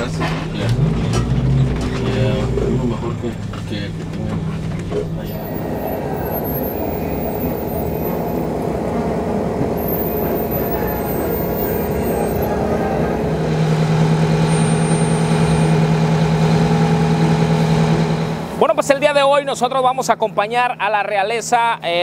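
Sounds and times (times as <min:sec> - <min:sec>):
bus diesel engine humming: 0:00.0 - 0:19.2.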